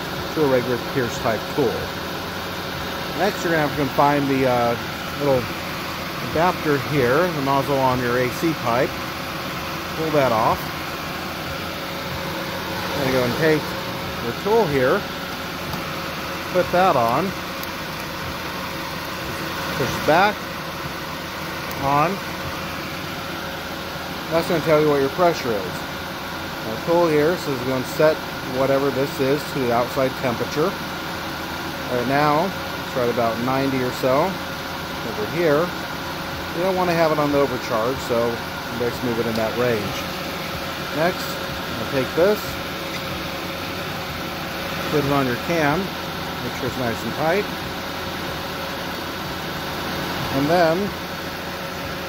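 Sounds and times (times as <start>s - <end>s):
car engine idling: 0.0s - 52.0s.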